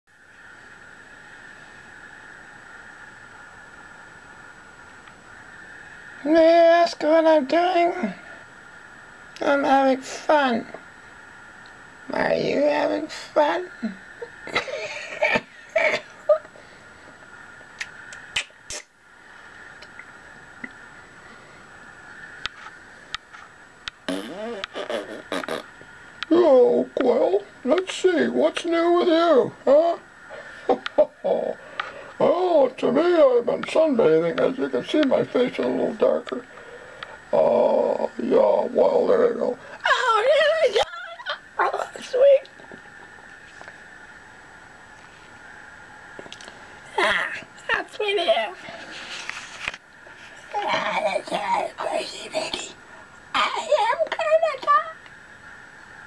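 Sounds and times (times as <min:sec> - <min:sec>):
steady hiss with high whine: 0:00.1 - 0:56.0.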